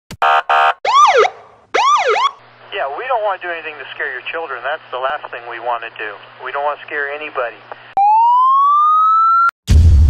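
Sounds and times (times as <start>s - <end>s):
electronic siren buzzing blasts: 0.2s - 2.4s, 8.0s - 9.5s
electronic siren whoops: 0.2s - 2.4s, 8.0s - 9.5s.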